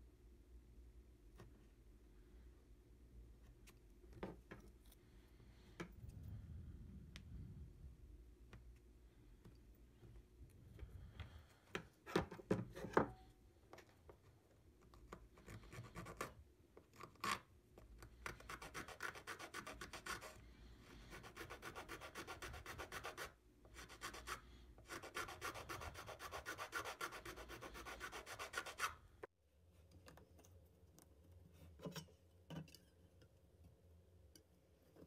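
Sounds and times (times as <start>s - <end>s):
file rasping on wood: 18.3s - 20.4s, 21.1s - 29.0s.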